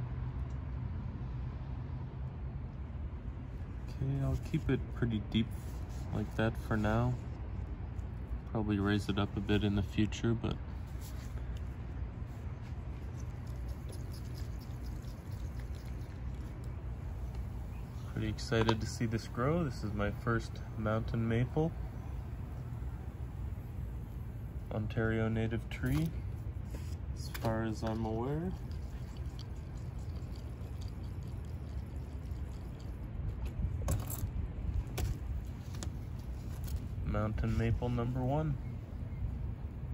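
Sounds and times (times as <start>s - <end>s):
steady low rumble: 0.0s - 39.9s
soil pot clicks and scratches: 12.9s - 18.9s, 26.7s - 34.3s.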